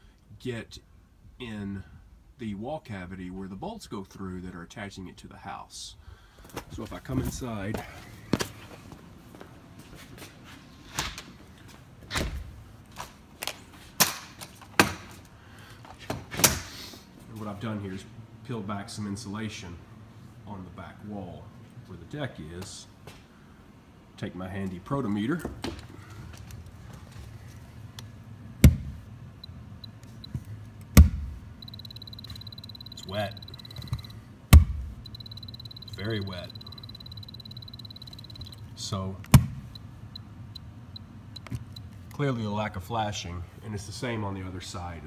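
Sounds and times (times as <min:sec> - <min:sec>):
short high beeps: 0:31.6 - 0:34.2, 0:35.0 - 0:38.6
steady high beep: 0:31.6 - 0:34.2, 0:35.0 - 0:38.7.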